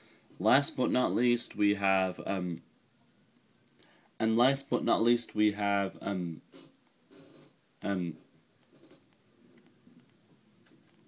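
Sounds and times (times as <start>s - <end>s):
faint scratching and rustling: 6.5s - 11.0s
man saying um: 7.8s - 8.3s
soft clicks: 8.6s - 11.0s.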